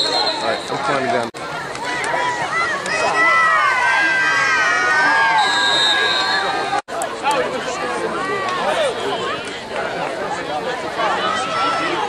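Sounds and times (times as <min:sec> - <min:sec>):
shrill whistle: 0:00.0 - 0:00.7, 0:05.3 - 0:06.7
spectators shouting and cheering: 0:00.0 - 0:12.0.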